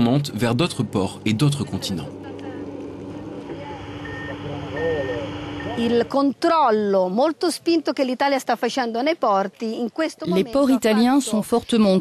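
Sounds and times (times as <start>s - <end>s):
engine drone: 0.0s - 6.2s
outdoor background noise: 0.0s - 12.0s
reversing alarm beeping: 3.8s - 6.1s.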